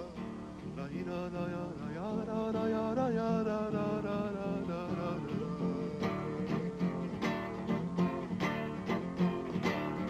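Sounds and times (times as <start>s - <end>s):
man singing long notes: 0.0s - 8.4s
acoustic guitar: 0.0s - 10.0s.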